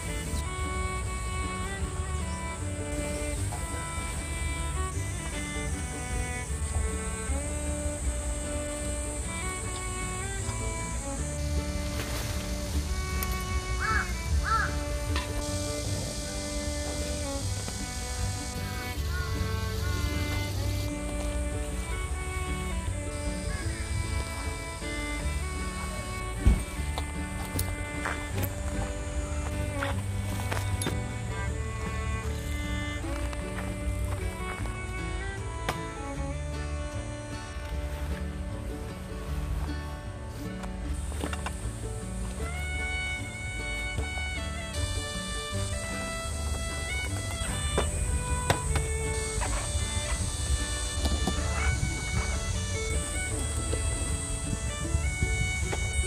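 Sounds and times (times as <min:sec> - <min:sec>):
instrumental music with held notes: 0:00.0 - 0:56.0.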